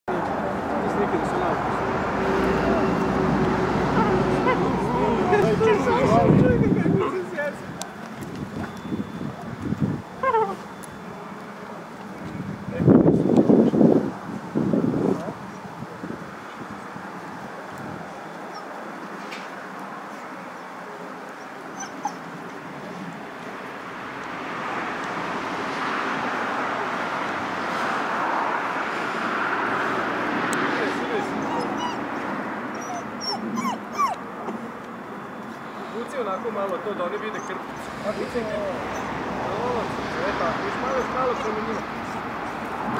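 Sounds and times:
puppies whimpering and yipping: 10.2s - 11.0s, 21.3s - 23.1s, 30.9s - 34.6s, 36.3s - 39.2s, 40.7s - 42.9s.

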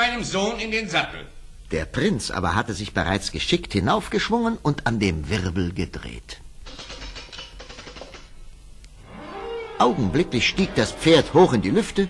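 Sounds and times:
fast clicks and rattling: 6.6s - 8.4s
music: 9.0s - 12.0s.

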